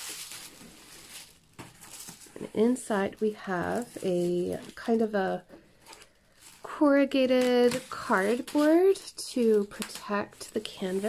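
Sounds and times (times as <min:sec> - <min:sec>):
tissue paper rustling: 0:00.0 - 0:11.0.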